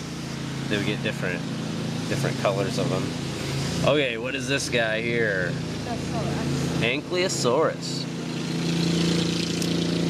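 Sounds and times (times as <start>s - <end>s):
lawn mower engine running: 0.0s - 10.0s.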